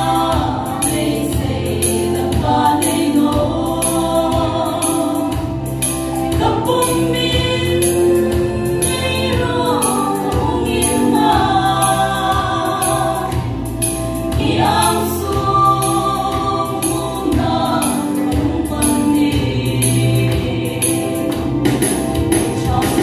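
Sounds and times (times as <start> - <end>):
female vocal group singing gospel: 0.0 - 23.0.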